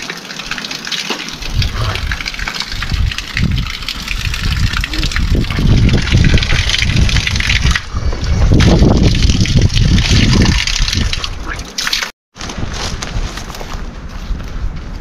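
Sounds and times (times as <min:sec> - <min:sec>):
water splashing into stone basin: 0:00.0 - 0:12.1
low rumbling: 0:01.4 - 0:11.6.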